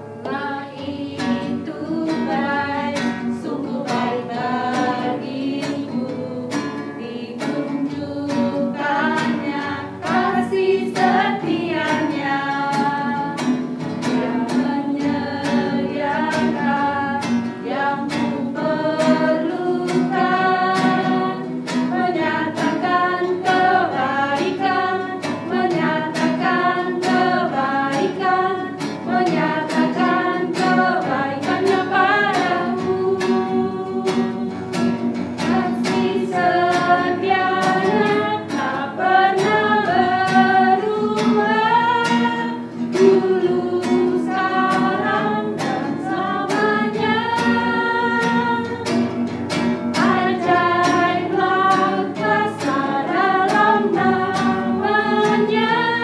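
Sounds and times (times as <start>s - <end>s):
group singing in unison: 0.0s - 56.0s
strummed acoustic guitar: 0.0s - 56.0s.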